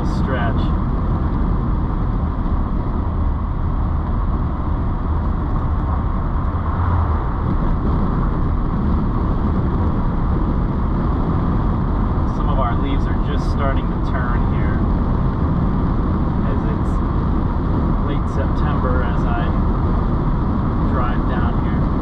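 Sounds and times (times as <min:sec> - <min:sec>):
car engine running: 0:00.0 - 0:22.0
tyre and road noise: 0:00.0 - 0:22.0.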